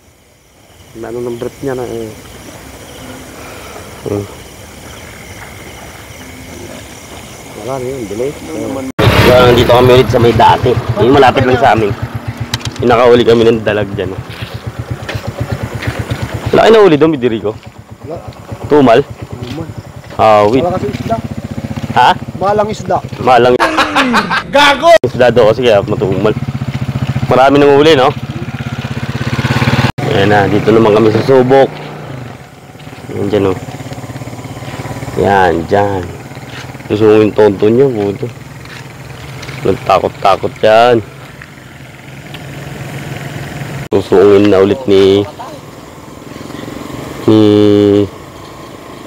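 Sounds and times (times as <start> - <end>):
small engine puttering: 1.0 - 23.6, 25.2 - 49.0.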